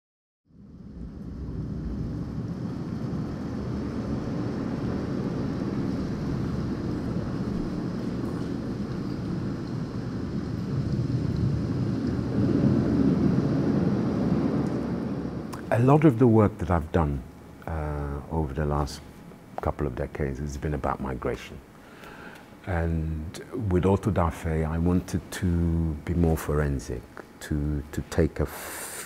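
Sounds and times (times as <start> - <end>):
low steady rushing noise: 0.5 - 29.0.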